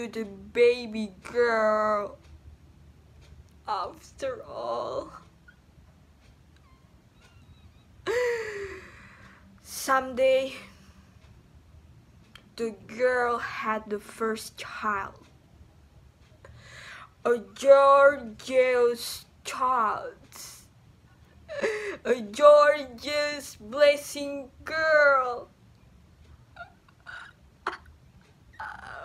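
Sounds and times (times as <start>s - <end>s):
woman speaking dramatically: 0.0s - 2.2s, 3.7s - 5.2s, 9.6s - 10.7s, 12.6s - 15.2s, 17.2s - 20.6s, 22.0s - 25.6s
woman sighing: 8.0s - 9.3s.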